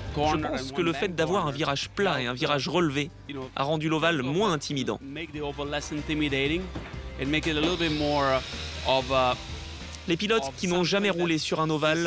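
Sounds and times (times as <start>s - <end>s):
man speaking: 0.0s - 9.4s, 10.1s - 12.0s
background music: 0.0s - 12.0s.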